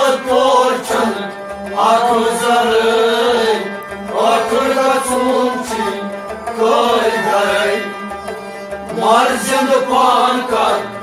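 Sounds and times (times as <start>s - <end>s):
harmonium: 0.0s - 11.0s
men singing together: 0.0s - 11.0s
rabab: 0.0s - 11.0s.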